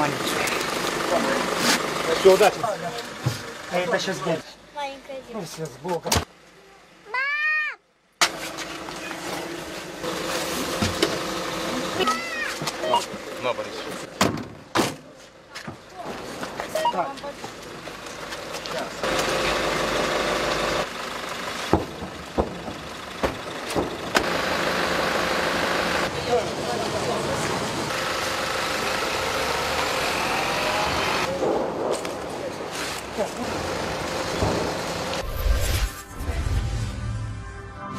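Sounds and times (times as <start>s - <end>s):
bus engine idling: 0.0s - 5.0s, 8.8s - 14.2s, 17.6s - 31.4s, 32.8s - 35.2s.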